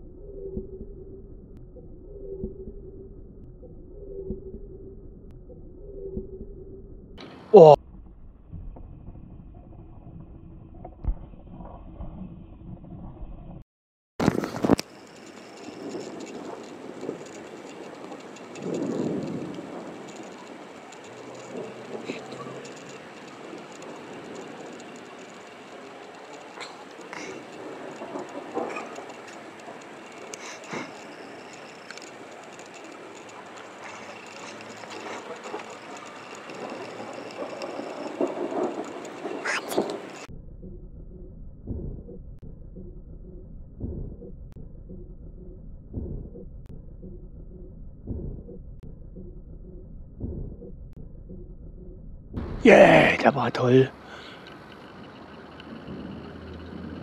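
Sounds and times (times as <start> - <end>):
loud crackling burst: 14.2 - 40.3
steady storm hiss: 14.4 - 40.3, 52.4 - 57.0
distant thunder rumble: 15.2 - 40.3.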